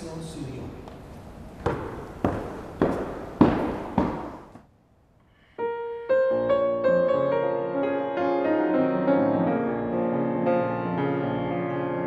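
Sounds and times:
reverberant knocks: 0.9 - 4.7
grand piano playing: 5.6 - 12.0.

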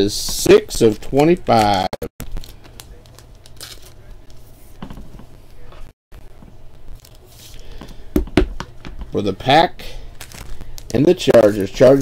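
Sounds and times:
packaging rustling and crinkling: 2.2 - 4.6, 10.1 - 12.0.

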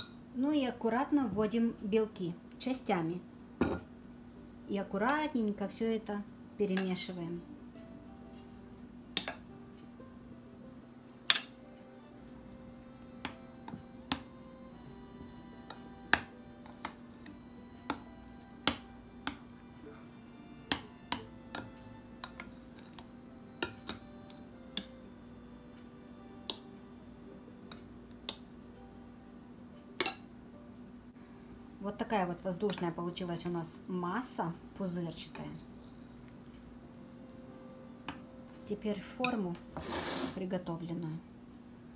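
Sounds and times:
faint music: 0.0 - 41.9
spoon and whisk knocking bowl: 16.1 - 17.0, 17.9 - 19.5, 20.7 - 23.0.

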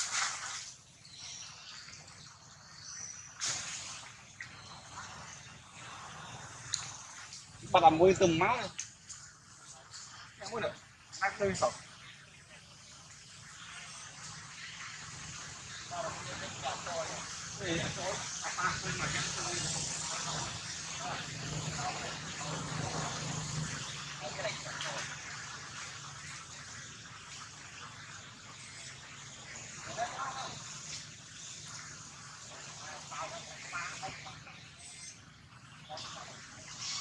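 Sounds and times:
steady high hiss: 0.0 - 37.0
indistinct voices talking: 15.8 - 23.6.

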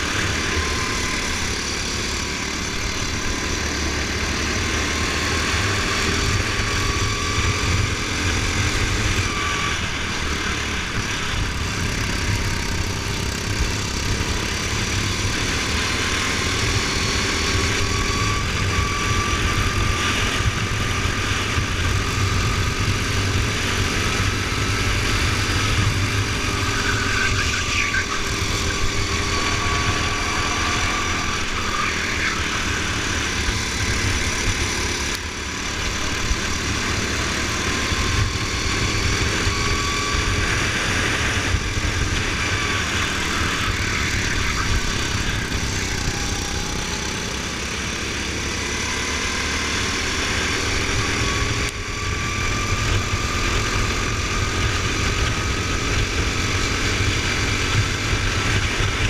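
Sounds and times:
go-kart engine revving: 0.0 - 59.0.

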